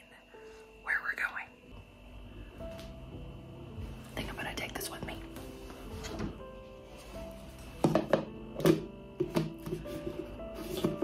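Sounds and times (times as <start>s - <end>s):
faint steady hum: 0.0s - 10.4s.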